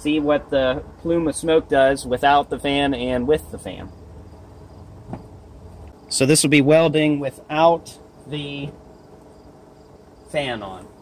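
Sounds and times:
soft knock: 5.1s - 5.3s.

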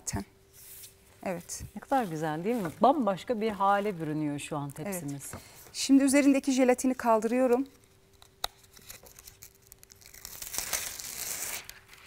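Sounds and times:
plastic film peeling: 7.7s - 12.0s.

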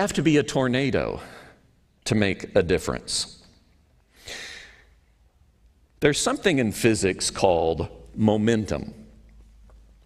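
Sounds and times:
man exhaling: 4.2s - 4.9s.

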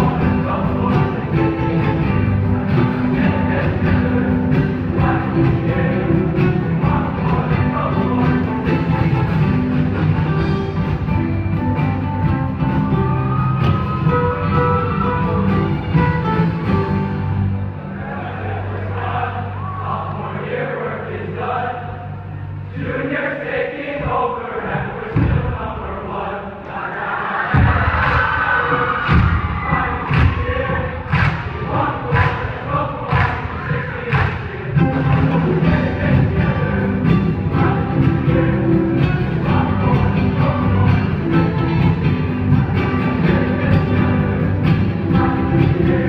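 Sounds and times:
male choir chanting and singing: 0.0s - 9.4s, 17.9s - 46.0s
rock band playing: 0.0s - 17.7s, 34.8s - 46.0s
loud drum hits: 25.1s - 25.6s, 27.6s - 37.2s.

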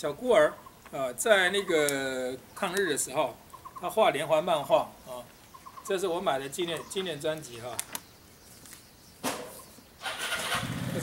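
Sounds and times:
engine starting and running: 10.0s - 11.0s.

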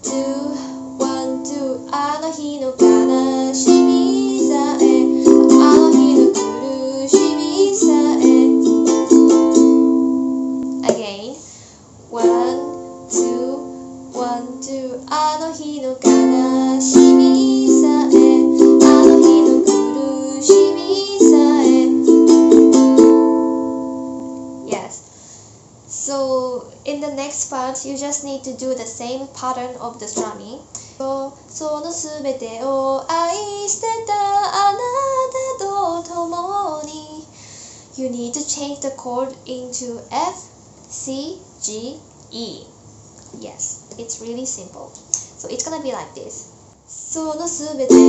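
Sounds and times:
woman singing: 0.0s - 9.8s, 12.1s - 22.6s, 25.9s - 37.3s, 38.0s - 40.4s, 46.9s - 48.0s
ukulele strumming: 0.0s - 11.1s, 12.2s - 24.9s, 30.1s - 30.4s, 47.7s - 48.0s.

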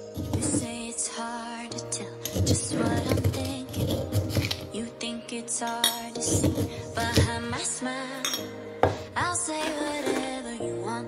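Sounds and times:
music playing: 0.0s - 11.0s
kitchenware clinking: 2.2s - 4.7s, 5.7s - 7.4s, 8.2s - 9.0s, 9.6s - 10.4s.

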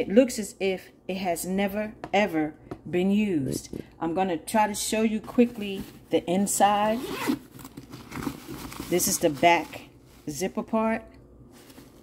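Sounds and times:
zipper rasp: 6.8s - 8.4s
fabric handling: 6.9s - 10.6s, 11.5s - 12.0s.

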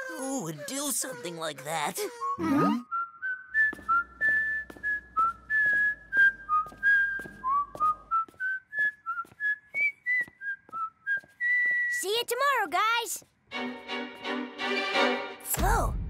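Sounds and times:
person whistling a tune: 2.2s - 12.0s.

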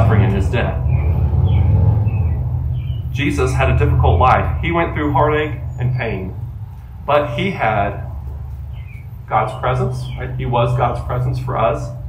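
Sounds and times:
steady low rumble: 0.0s - 12.0s
faint bird chirps: 8.2s - 10.4s.

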